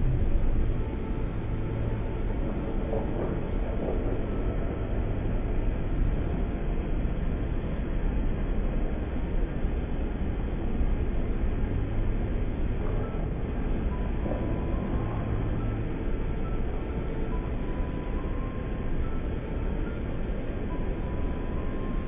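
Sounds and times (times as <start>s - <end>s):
low background rumble: 0.0s - 22.0s.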